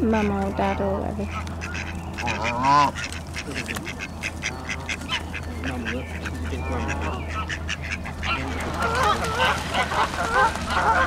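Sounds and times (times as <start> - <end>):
steady low hum: 0.0 - 11.0
waterfowl calling: 0.0 - 11.0.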